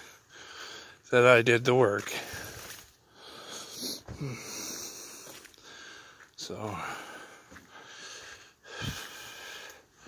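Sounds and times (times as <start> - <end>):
man breathing hard: 0.0 - 1.1, 2.1 - 10.0.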